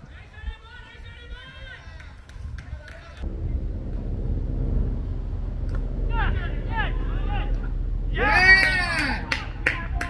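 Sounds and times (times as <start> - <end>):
hand claps: 8.6 - 10.0.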